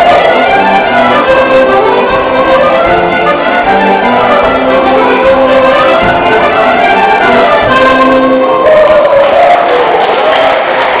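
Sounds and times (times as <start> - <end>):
dance tune: 0.0 - 10.1
crowd clapping: 0.0 - 11.0.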